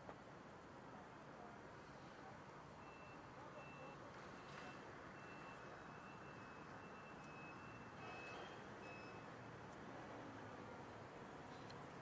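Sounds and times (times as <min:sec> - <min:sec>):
vehicle backup alarm beeping: 0:02.8 - 0:09.3.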